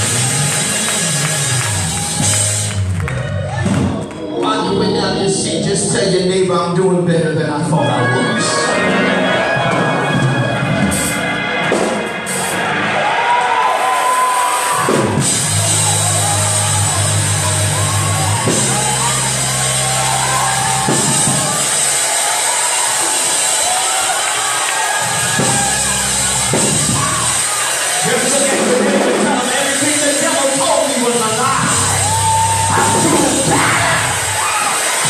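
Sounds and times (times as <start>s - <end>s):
drums: 0.0s - 4.3s, 8.8s - 35.0s
sustained bass notes: 0.0s - 13.2s, 14.9s - 22.1s, 25.0s - 34.5s
congregation shouting and cheering: 0.0s - 35.0s
gospel band music: 0.0s - 35.0s.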